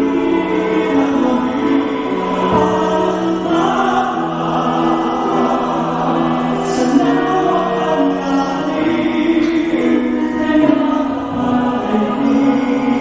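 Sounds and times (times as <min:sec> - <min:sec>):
choir singing sustained notes: 0:00.0 - 0:13.0
man singing into microphone: 0:00.0 - 0:13.0.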